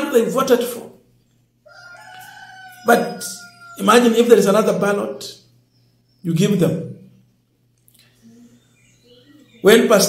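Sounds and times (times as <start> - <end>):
man's voice: 9.6 - 10.0.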